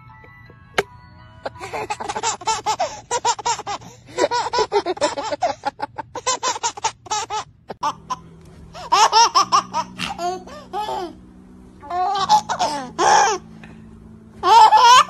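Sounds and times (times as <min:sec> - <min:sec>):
baby laughing: 0:01.5 - 0:11.2, 0:11.8 - 0:13.4, 0:14.4 - 0:15.0.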